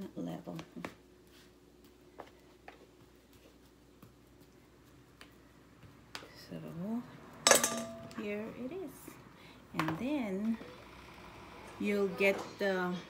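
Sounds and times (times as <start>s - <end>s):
metal sheet pan clanging: 7.5s - 8.2s.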